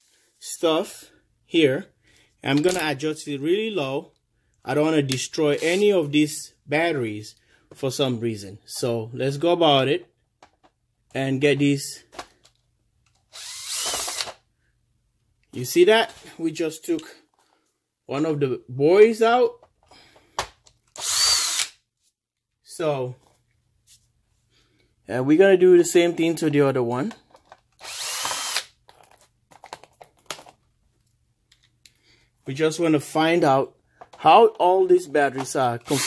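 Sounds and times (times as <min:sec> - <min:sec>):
cordless drill motor whining: 0:13.2 - 0:14.4, 0:21.0 - 0:21.7, 0:27.8 - 0:28.7.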